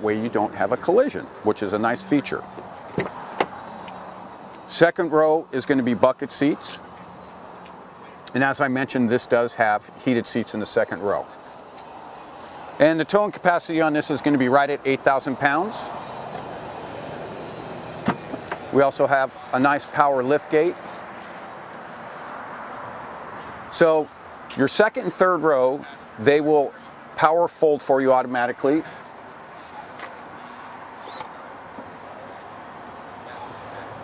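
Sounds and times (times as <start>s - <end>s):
outdoor background noise: 0.0s - 34.0s
road traffic: 0.0s - 34.0s.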